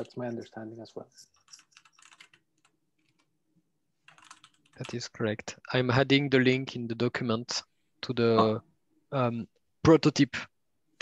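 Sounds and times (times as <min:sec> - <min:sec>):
computer keyboard typing: 0:01.2 - 0:03.4, 0:04.0 - 0:05.0.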